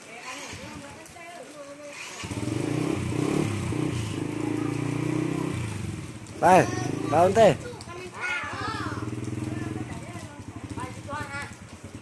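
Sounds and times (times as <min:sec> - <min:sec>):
small motorcycle engine running: 0:00.1 - 0:01.0, 0:01.9 - 0:07.7, 0:08.5 - 0:12.0
voices calling: 0:03.9 - 0:11.7.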